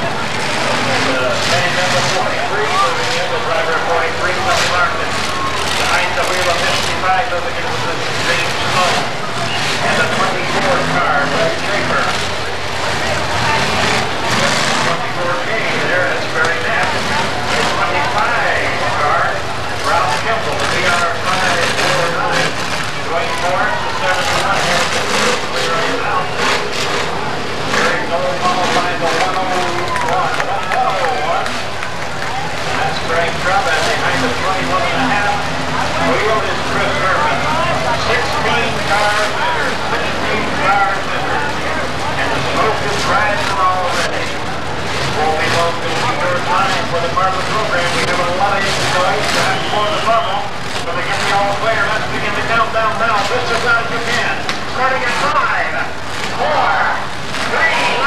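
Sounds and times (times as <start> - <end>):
car engines running: 0.0 - 58.0
crowd voices hubbub: 0.0 - 58.0.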